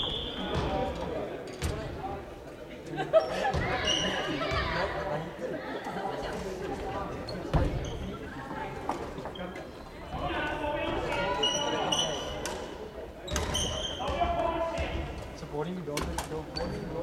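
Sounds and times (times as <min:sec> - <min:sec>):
players' voices: 0:00.0 - 0:17.0.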